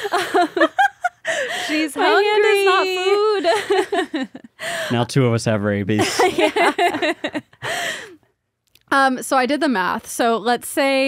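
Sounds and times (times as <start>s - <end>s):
woman laughing: 0.0s - 4.9s, 6.0s - 8.1s
person speaking: 1.6s - 3.7s, 4.8s - 6.5s.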